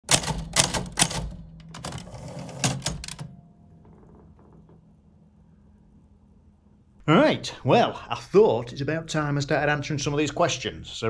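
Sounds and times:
typewriter key strikes: 0.0s - 3.4s.

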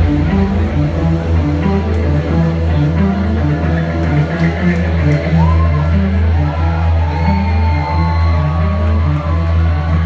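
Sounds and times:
loud live rock music: 0.0s - 10.0s
crowd whooping and cheering: 4.7s - 10.0s.

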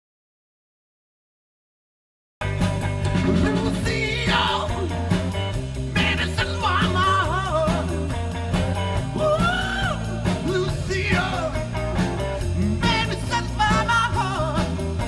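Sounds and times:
live rock band: 2.4s - 15.0s
lead vocalist singing: 3.2s - 8.2s, 9.0s - 15.0s.

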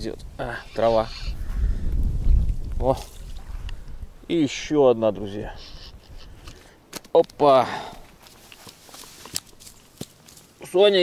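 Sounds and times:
soft rustles in grass: 7.4s - 11.0s.

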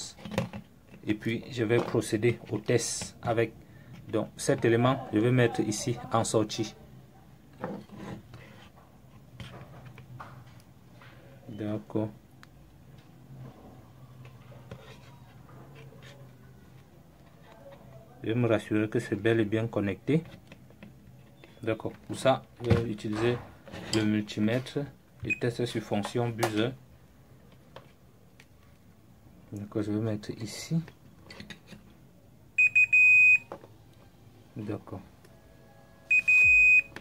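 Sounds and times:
multimeter continuity beeping: 32.6s - 33.5s, 35.3s - 37.0s.

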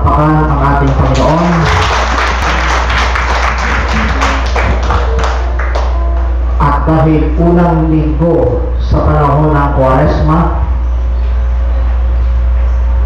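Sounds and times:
steady low hum: 0.0s - 13.0s
crowd applauding: 0.8s - 6.3s.

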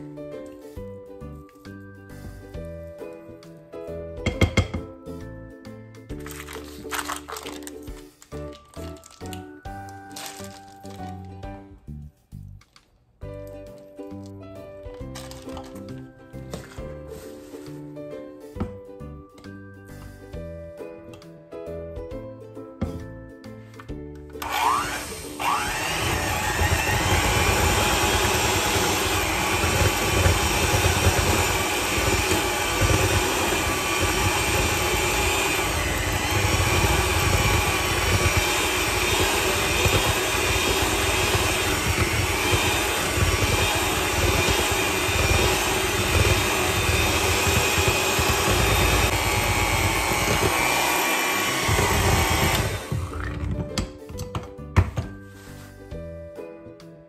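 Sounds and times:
electric hand mixer whirring: 24.4s - 53.6s.

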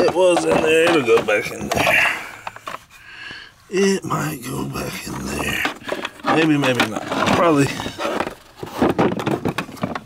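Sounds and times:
plastic attachments knocking and scraping: 0.0s - 2.9s, 5.1s - 10.0s.

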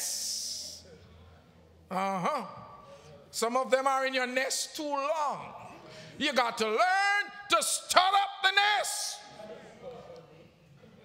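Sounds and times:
man preaching: 0.0s - 0.9s, 1.9s - 9.6s.

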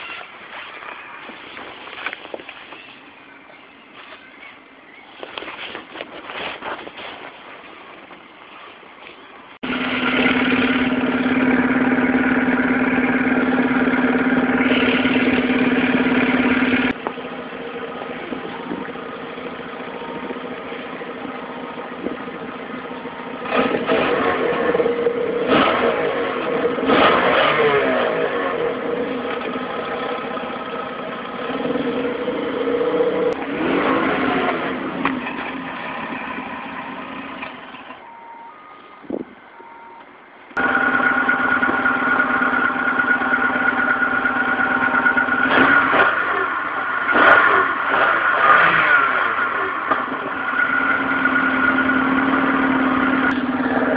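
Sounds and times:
car engine idling and revving: 9.6s - 53.9s.

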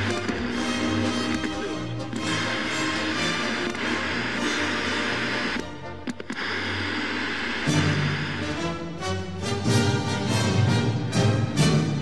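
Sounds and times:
sharp clicks: 0.0s - 2.6s, 5.1s - 6.9s
tv theme music: 0.0s - 6.0s, 7.6s - 12.0s.

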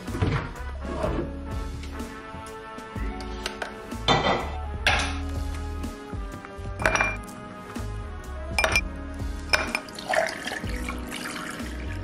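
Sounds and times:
water pouring over ice: 9.8s - 12.0s.

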